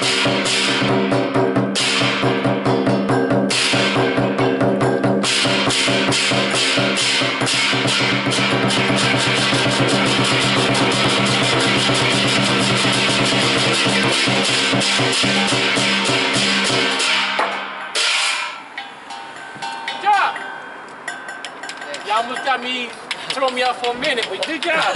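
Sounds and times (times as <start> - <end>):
hand gong ringing: 0.0 - 22.6
hand cymbals clashing: 0.0 - 23.3
drum beaten with sticks: 0.0 - 24.9
voices: 19.5 - 24.9.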